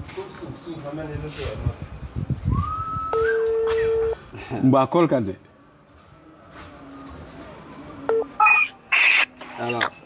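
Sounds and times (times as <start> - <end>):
phone keypad beeps: 8.1 - 8.7.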